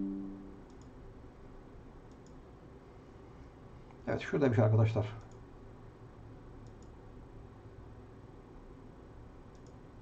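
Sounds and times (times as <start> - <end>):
low ringing tone: 0.0 - 0.6.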